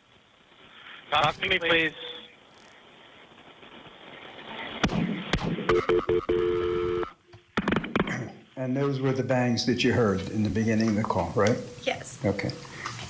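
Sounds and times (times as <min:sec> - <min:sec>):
held telephone tone: 0:05.7 - 0:07.3
telephone line noise: 0:05.7 - 0:07.3.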